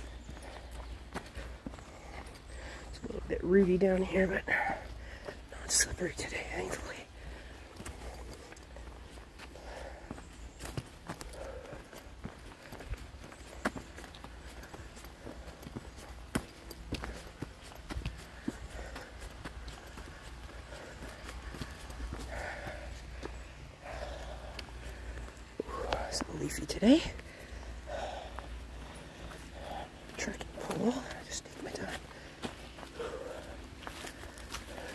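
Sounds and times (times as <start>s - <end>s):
footsteps on dry leaves: 0.0s - 34.9s.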